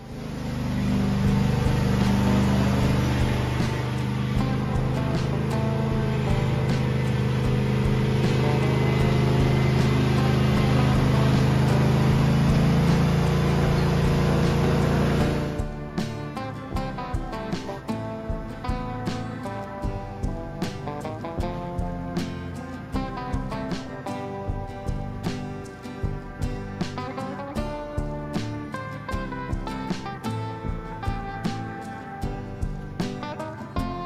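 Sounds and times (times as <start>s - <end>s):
background music: 0.0s - 34.0s
lawn tractor engine running: 0.0s - 34.0s.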